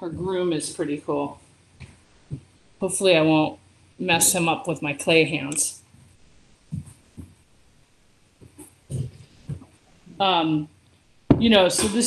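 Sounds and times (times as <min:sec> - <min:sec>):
soft handling knocks and bumps: 0:05.9 - 0:07.5, 0:08.3 - 0:10.2.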